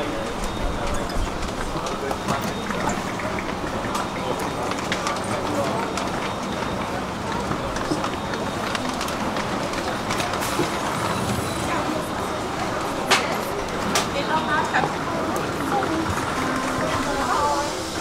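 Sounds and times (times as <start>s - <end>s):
indistinct voices: 0.0s - 18.0s.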